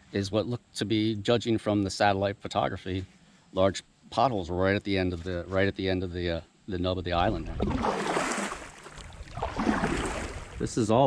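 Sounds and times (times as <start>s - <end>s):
water moving along hull: 7.4s - 10.6s
paddle splashing water: 7.5s - 10.6s.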